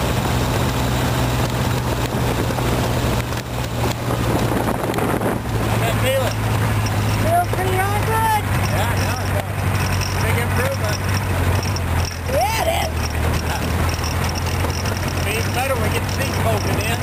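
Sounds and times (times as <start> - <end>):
wind rushing over microphone: 0.0 - 9.8
car engine running: 0.0 - 17.0.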